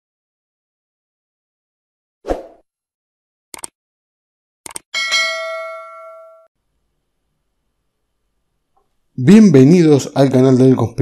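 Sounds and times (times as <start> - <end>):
quick clicks: 3.5 - 3.8, 4.6 - 4.9
bright bell ding: 5.0 - 6.5.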